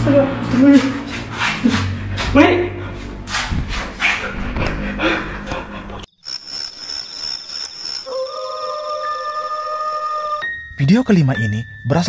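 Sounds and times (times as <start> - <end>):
eerie synthesizer drone: 0.0 - 10.5.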